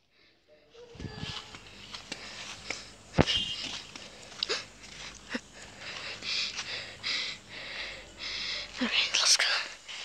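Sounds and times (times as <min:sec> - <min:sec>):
person whispering: 0:08.0 - 0:09.9.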